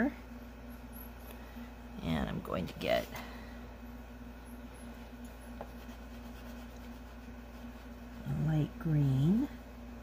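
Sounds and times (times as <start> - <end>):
steady low hum: 0.0 - 10.0
pastel scratching on paper: 5.6 - 8.5.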